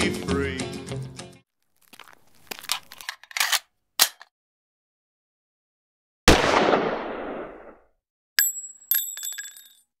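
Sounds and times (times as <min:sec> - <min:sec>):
pistol shot with echo: 0:06.3 - 0:07.8
shell casing clinking: 0:08.4 - 0:09.8.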